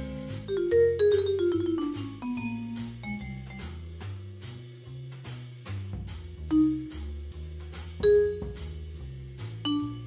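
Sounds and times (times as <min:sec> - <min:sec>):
jazz piano on keyboard: 0:00.0 - 0:04.2, 0:06.5 - 0:07.2, 0:08.0 - 0:10.0
ticking drum accompaniment: 0:00.0 - 0:10.0
walking bass line: 0:00.0 - 0:10.0.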